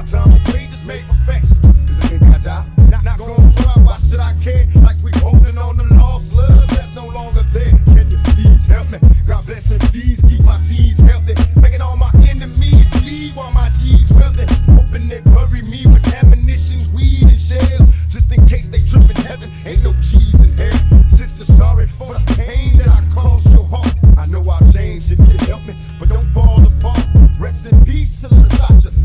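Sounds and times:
rapping over a bass-heavy beat: 0.0s - 29.0s.

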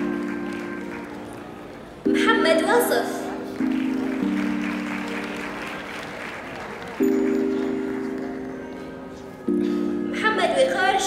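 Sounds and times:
audience applauding: 0.0s - 1.9s, 3.5s - 8.3s.

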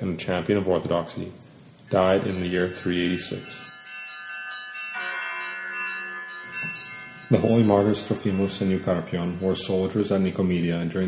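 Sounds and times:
chime-like ringing tones: 1.9s - 11.0s.

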